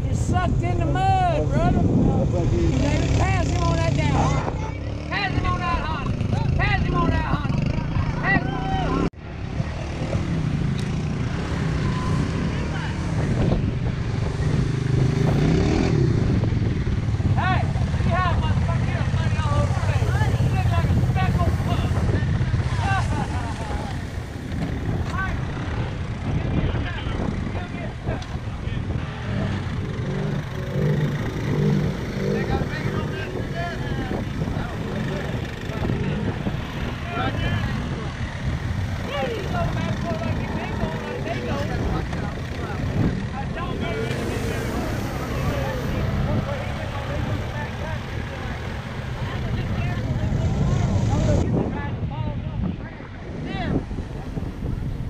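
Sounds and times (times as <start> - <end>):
atv engines running through mud: 2.2 - 51.5.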